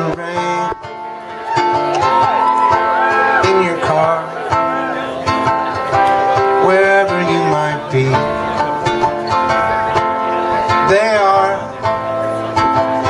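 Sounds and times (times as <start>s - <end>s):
acoustic guitar playing: 0.0s - 13.0s.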